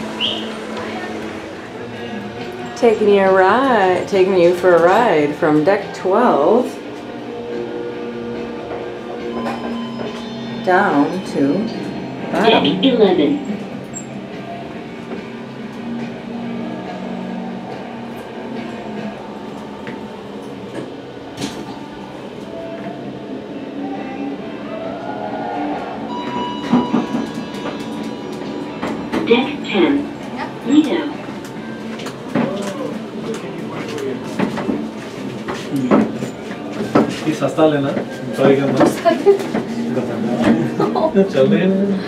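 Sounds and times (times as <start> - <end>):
elevator low hum: 0.0 - 42.0
people's voices: 0.1 - 7.0, 8.5 - 15.2, 16.2 - 42.0.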